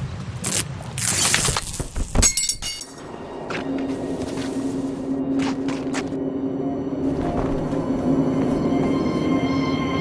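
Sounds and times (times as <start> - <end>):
low steady drone: 3.0 - 10.0.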